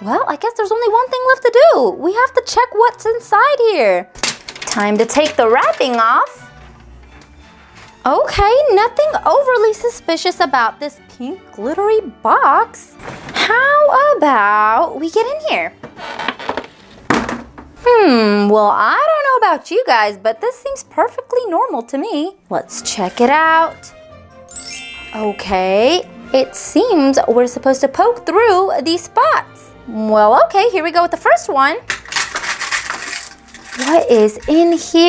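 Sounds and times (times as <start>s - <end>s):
contents rustling: 4.2s - 8.1s, 31.9s - 35.0s
cardboard crinkling and tearing: 32.1s - 34.3s.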